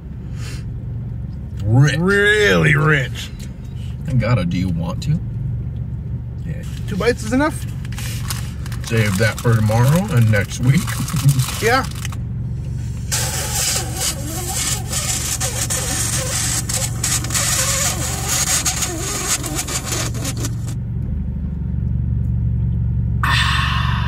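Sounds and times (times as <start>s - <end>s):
car engine humming: 0.0s - 24.0s.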